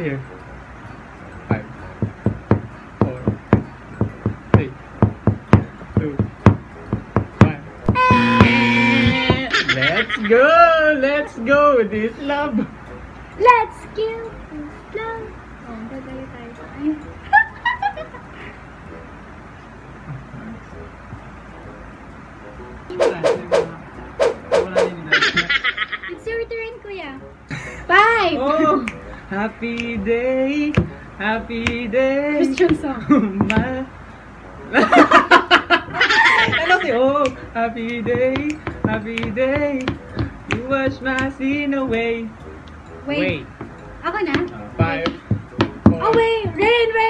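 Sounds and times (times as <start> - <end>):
held steady tone: 0.0 - 9.8
sharp taps: 2.0 - 9.5, 30.7 - 31.0, 31.6 - 31.8, 32.5 - 33.8, 36.3 - 46.7
person singing: 7.9 - 10.0, 28.4 - 33.9
people laughing: 8.7 - 10.7, 17.2 - 18.4, 25.0 - 26.2, 34.7 - 37.2.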